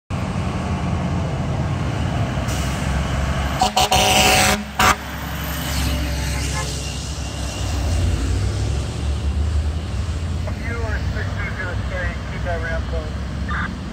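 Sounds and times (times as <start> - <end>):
heavy vehicle engines rumbling: 0.1 - 13.9
air horn toots and blast: 3.6 - 5.2, 5.8 - 7.3.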